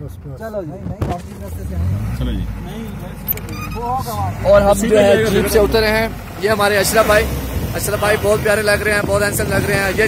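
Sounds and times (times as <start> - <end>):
man talking: 0.0 - 10.0
engine running: 1.2 - 9.0.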